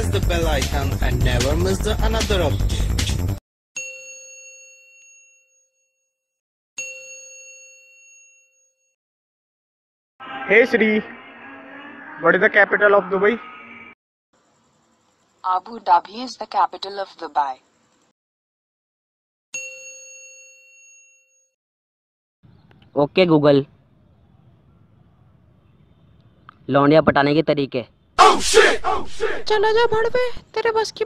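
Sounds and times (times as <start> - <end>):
bell-like chime ding: 3.8 - 6.1, 19.6 - 21.6.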